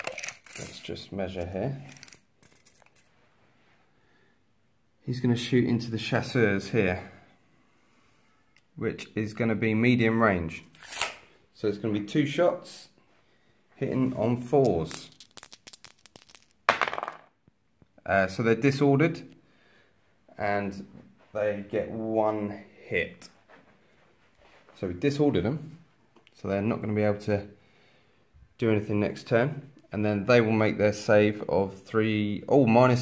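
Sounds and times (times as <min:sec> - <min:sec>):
dice shaken with light clicks: 0:14.6 - 0:17.2
dice clattering onto a board: 0:14.7 - 0:17.3.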